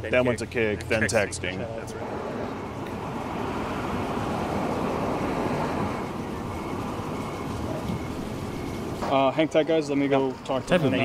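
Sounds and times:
rushing outdoor ambient noise: 0.0s - 11.0s.

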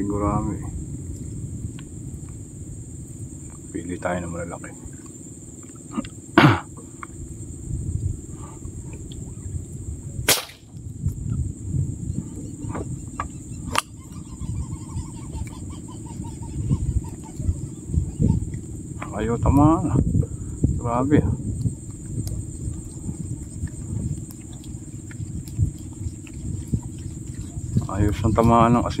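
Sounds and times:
high insect buzz: 0.0s - 29.0s.

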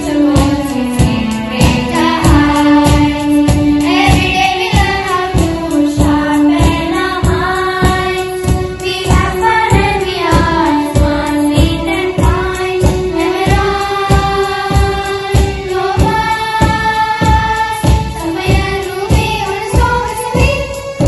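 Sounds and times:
children's choir singing: 0.0s - 21.0s
instrumental accompaniment: 0.0s - 21.0s.

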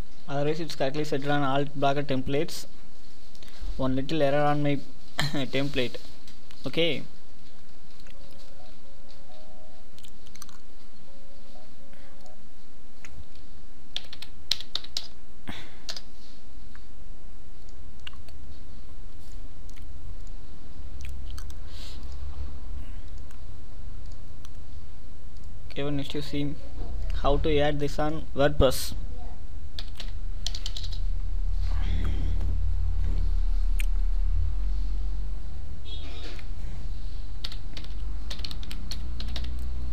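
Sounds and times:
steady low hum: 0.0s - 39.9s
keyboard keys clicking: 13.9s - 15.2s, 29.8s - 31.0s, 37.4s - 39.7s.

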